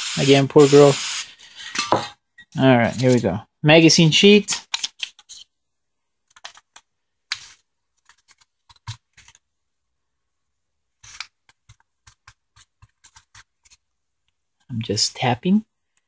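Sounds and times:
paper tapping and crinkling: 6.3s - 9.4s, 11.0s - 13.8s.

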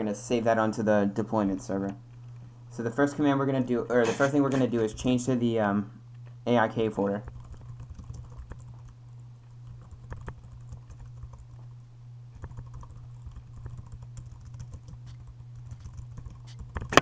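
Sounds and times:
steady low hum: 0.0s - 17.0s
keyboard typing: 7.2s - 9.0s, 9.6s - 11.7s, 12.4s - 17.0s.

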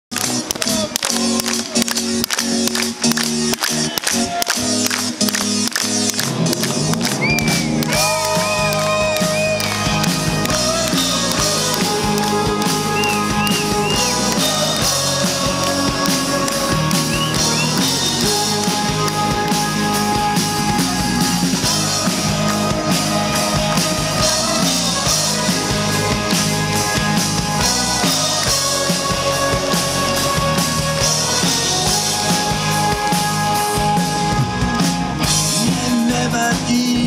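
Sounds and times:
rock band playing: 0.1s - 37.0s.

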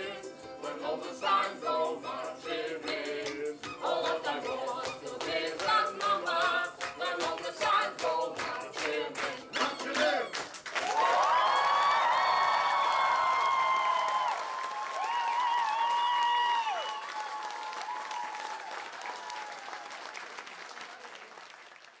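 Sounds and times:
audience applauding: 4.8s - 22.0s
high whoops: 10.8s - 20.2s.

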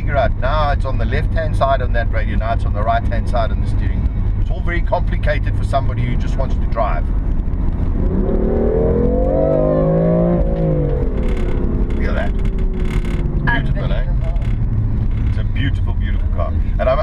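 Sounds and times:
car engine accelerating: 0.0s - 17.0s
road rumble: 0.0s - 17.0s.

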